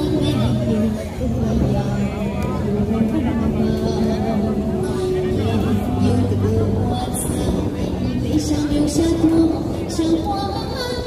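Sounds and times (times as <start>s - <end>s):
backing track: 0.0s - 11.0s
woman singing through microphone: 0.0s - 11.0s.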